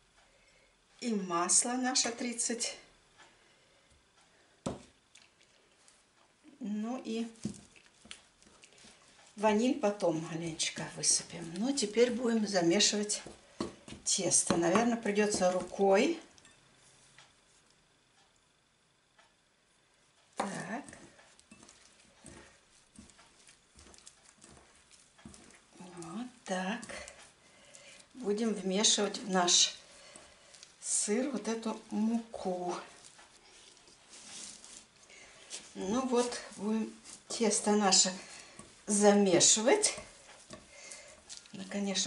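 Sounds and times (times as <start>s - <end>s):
hand pressing dough in bowl: 7.2s - 16.3s, 20.4s - 34.9s.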